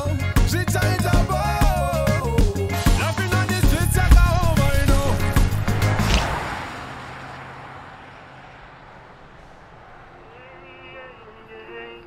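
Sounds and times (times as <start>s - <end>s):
car passing: 3.0s - 12.0s.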